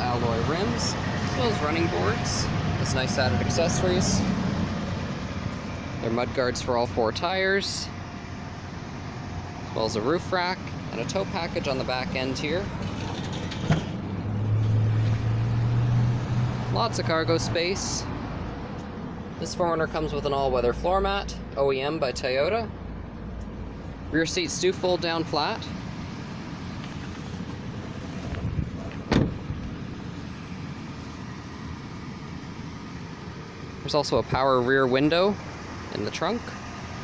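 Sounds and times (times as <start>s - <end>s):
low vehicle engine hum: 0.0s - 37.0s
liftgate being shut: 29.0s - 29.4s.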